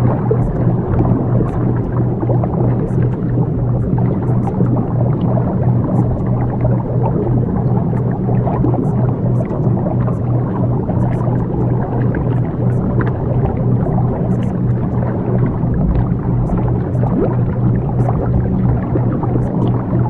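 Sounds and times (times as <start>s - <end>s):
deep droning hums: 0.0s - 20.0s
murky rumbling texture: 0.0s - 20.0s.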